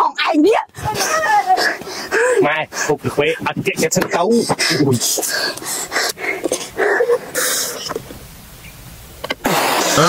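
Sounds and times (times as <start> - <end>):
brief hiss: 9.2 - 10.0
person spitting out drink: 9.3 - 10.0.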